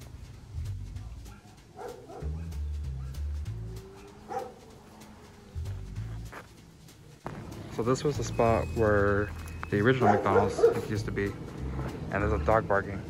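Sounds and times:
low uneven rumble: 0.0s - 13.0s
dog barking: 1.0s - 5.0s, 9.9s - 11.0s.

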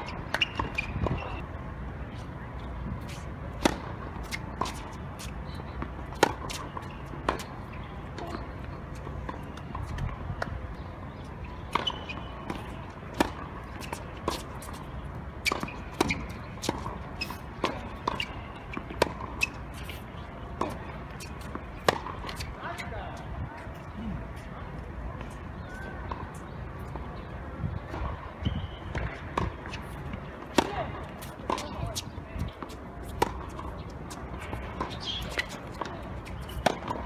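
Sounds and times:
tennis ball bouncing: 0.0s - 1.4s, 3.0s - 10.8s, 11.4s - 22.8s, 28.9s - 37.0s
rackets striking tennis ball: 11.6s - 22.8s, 28.9s - 37.0s.

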